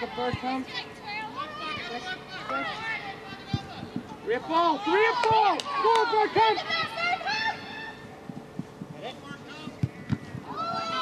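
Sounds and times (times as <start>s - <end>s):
players shouting: 0.0s - 8.0s, 10.4s - 11.0s.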